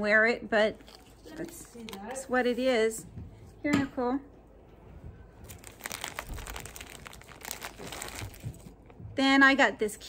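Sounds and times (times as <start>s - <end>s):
plastic bag crinkling: 0.8s - 2.4s, 5.4s - 8.9s.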